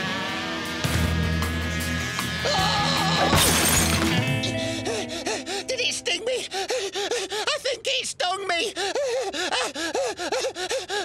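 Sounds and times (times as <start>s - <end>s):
cartoon man panicked yelps: 7.4s - 9.8s.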